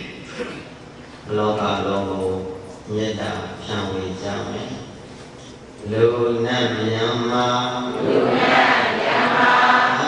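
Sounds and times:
man chanting into a microphone: 0:05.8 - 0:08.0.

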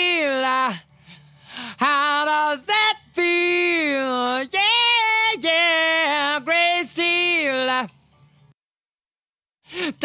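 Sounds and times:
man singing: 0:00.0 - 0:00.9, 0:01.6 - 0:08.0.

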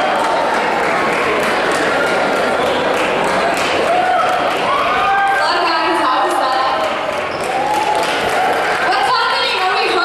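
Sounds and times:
voices in an auditorium: 0:00.0 - 0:10.0.

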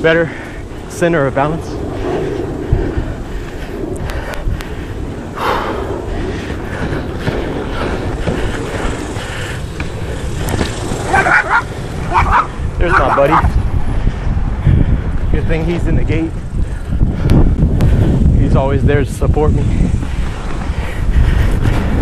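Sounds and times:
inline skate wheels rolling: 0:02.3 - 0:13.4.

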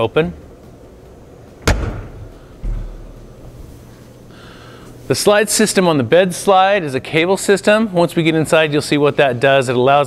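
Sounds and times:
dull low thump: 0:01.6 - 0:03.4.

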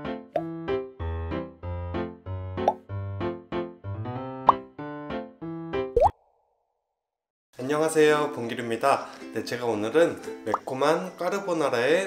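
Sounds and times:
bouncy keyboard cartoon music: 0:00.0 - 0:06.0.

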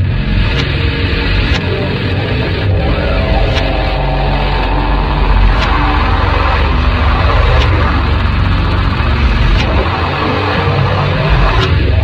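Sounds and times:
distorted guitar and bass drone: 0:00.0 - 0:12.0.

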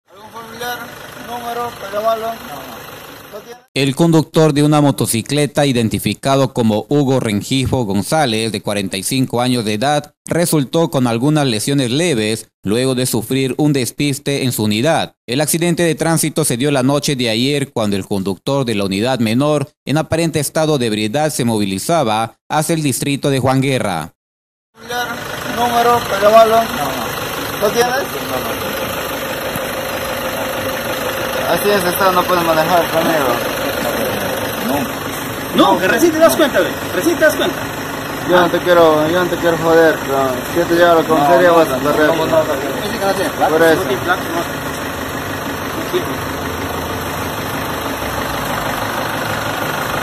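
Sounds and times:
engine idling: 0:00.1 - 0:03.7, 0:24.8 - 0:50.0
people talking: 0:00.1 - 0:24.1, 0:24.8 - 0:28.9, 0:31.4 - 0:37.6, 0:38.2 - 0:44.5, 0:45.7 - 0:46.3.

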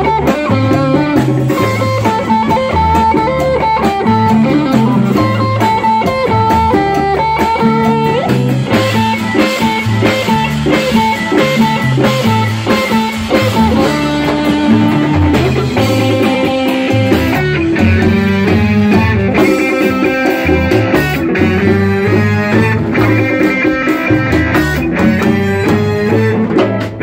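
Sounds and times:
bass guitar line: 0:00.0 - 0:27.0
drums and cymbals: 0:00.0 - 0:27.0
electric guitar lead melody: 0:00.0 - 0:27.0
keyboards: 0:00.0 - 0:27.0.

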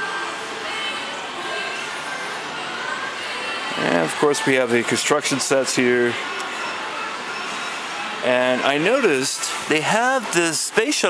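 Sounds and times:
faint music: 0:00.0 - 0:11.0
indistinct background noise: 0:00.0 - 0:11.0.

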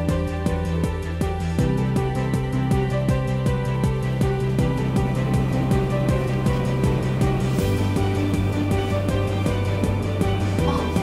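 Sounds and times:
background music with steady beat: 0:00.0 - 0:11.0
sustained bass notes: 0:00.0 - 0:11.0.

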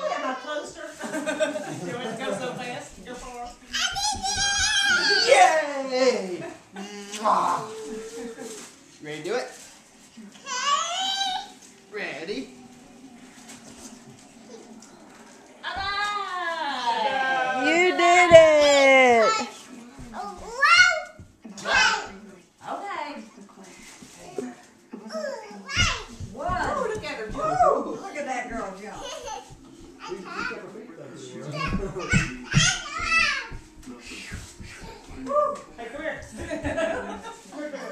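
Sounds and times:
low thuds: 0:25.8 - 0:27.8.

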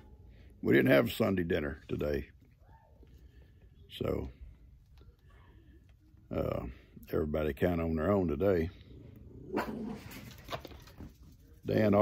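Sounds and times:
dog barking: 0:09.5 - 0:10.2.

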